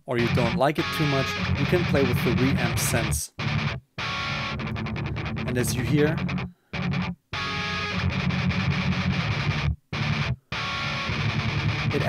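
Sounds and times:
distorted electric guitar riff: 0.2 - 12.0.

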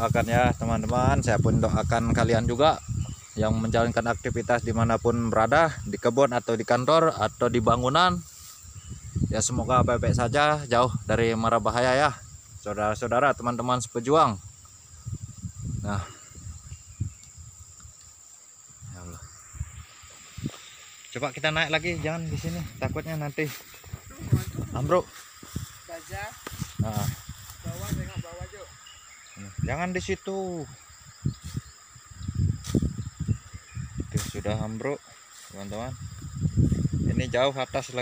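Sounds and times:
wind buffeting microphone: 0.0 - 6.1, 7.2 - 34.8, 35.6 - 38.0
insects droning: 0.0 - 38.0.

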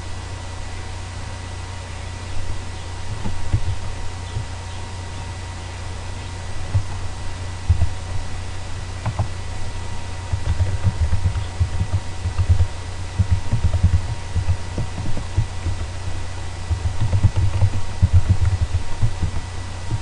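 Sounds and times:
faint electrical hum: 0.0 - 20.0
computer keyboard typing: 10.3 - 15.9, 16.7 - 20.0.

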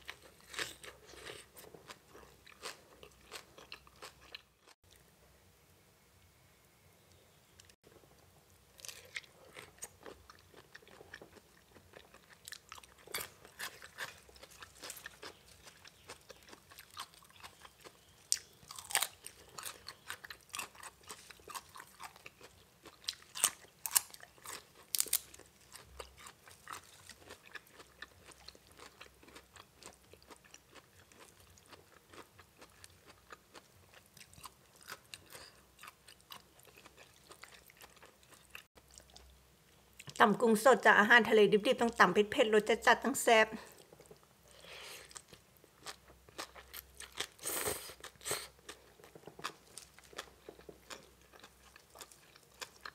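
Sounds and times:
person chewing crunchy food: 0.0 - 4.8, 8.7 - 40.2, 43.7 - 52.9.

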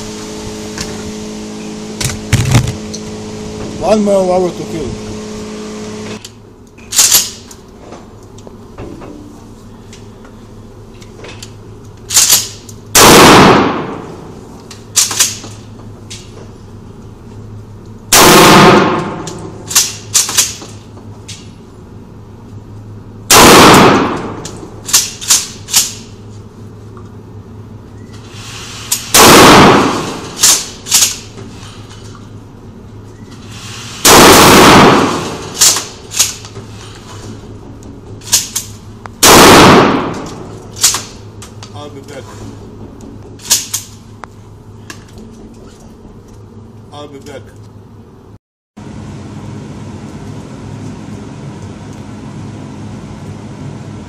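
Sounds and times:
lighter gunshot cracks: 13.0 - 14.0, 18.2 - 20.6, 23.3 - 25.2, 29.2 - 31.1, 34.1 - 35.9, 39.2 - 41.1
loud gunshots echoing: 13.0 - 14.3, 18.1 - 19.9, 23.3 - 24.4, 29.1 - 30.7, 34.0 - 36.0, 39.2 - 40.5.

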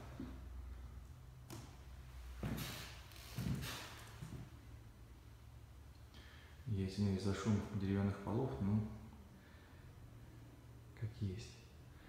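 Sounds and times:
footsteps on wooden floorboards: 2.4 - 4.4
floorboards creaking and knocking: 2.4 - 4.5.

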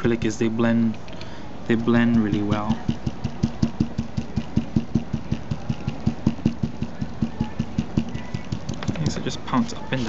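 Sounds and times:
stencil brush dabbing taps: 1.7 - 10.0.

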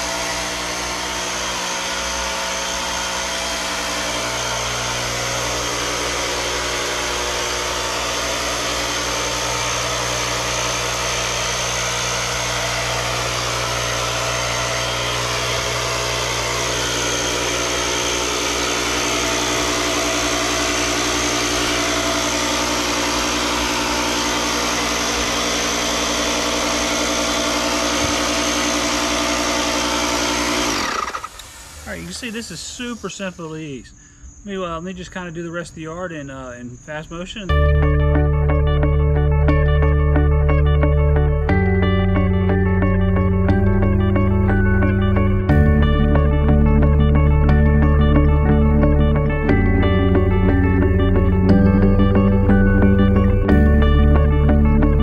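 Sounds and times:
fogger motor humming: 0.0 - 33.9, 37.5 - 55.0.

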